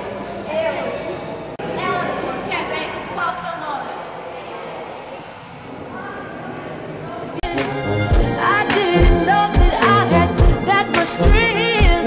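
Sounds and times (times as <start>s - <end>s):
young people talking: 0.0s - 7.7s
room background noise: 0.0s - 8.4s.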